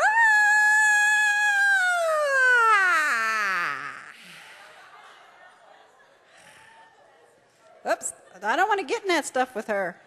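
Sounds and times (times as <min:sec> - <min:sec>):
woman wailing: 0:00.0 - 0:04.1.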